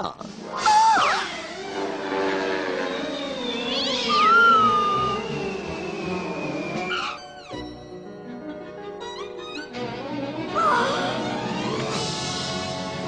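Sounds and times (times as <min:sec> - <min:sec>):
downward sweep effect: 0:00.6 - 0:06.9
high falling whistle: 0:02.7 - 0:07.3
cartoon cat yowling: 0:03.8 - 0:05.3, 0:10.6 - 0:11.0.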